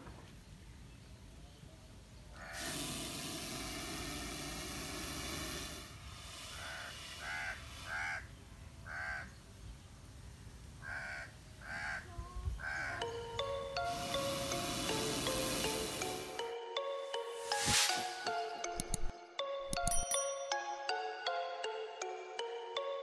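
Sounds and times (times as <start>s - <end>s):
crow cawing: 2.4s - 2.6s, 6.6s - 9.4s, 10.8s - 13.2s
loud rushing noise: 17.3s - 18.5s.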